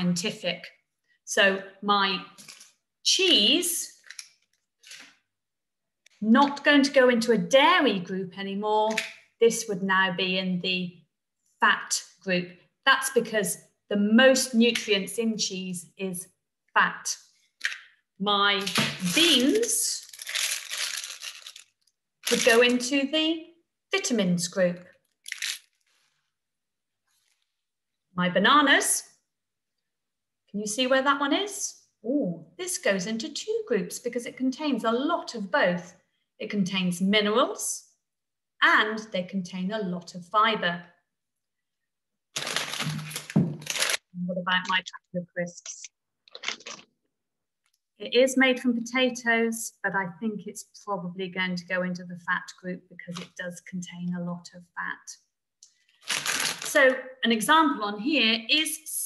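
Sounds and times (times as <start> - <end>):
plastic crisp packet crinkling: 4.0 - 5.2, 18.6 - 22.9, 25.0 - 26.3, 42.3 - 44.0, 46.3 - 46.8, 55.9 - 56.8
rustling handling noise: 18.9 - 22.8.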